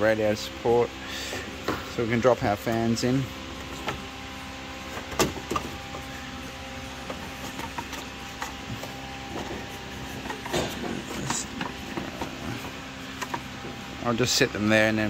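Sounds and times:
steady machine hum: 0.0s - 15.0s.

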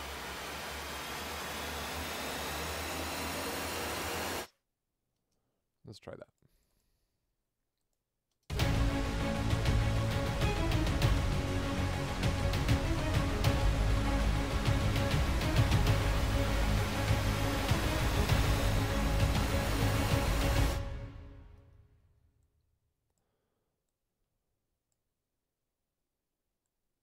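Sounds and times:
epic trailer music with percussion: 8.5s - 21.7s.

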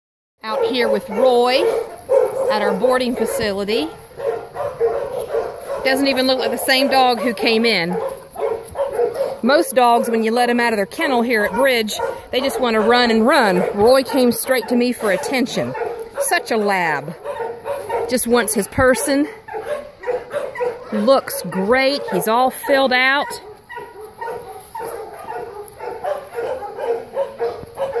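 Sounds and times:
dogs barking: 0.4s - 28.0s
dog whimpering and yipping: 18.8s - 28.0s.

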